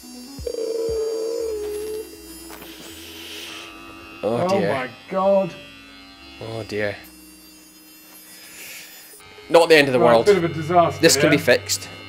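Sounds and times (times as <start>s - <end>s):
electric hair clipper buzzing: 0.0s - 12.0s.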